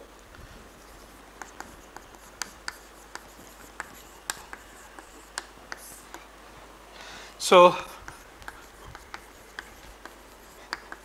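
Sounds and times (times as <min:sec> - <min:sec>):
chalk tapping on blackboard: 0:00.7 - 0:06.3, 0:08.0 - 0:11.0.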